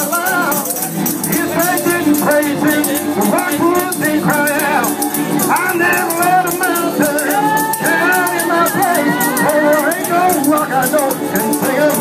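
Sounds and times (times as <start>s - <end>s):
gospel music: 0.0s - 12.0s
tambourine shaking: 0.0s - 12.0s.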